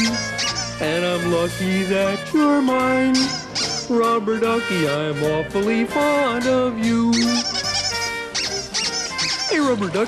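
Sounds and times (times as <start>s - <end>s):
rubber duck squeaking: 0.0s - 1.0s, 2.9s - 4.2s, 7.0s - 10.0s
light instrumental music: 0.0s - 10.0s.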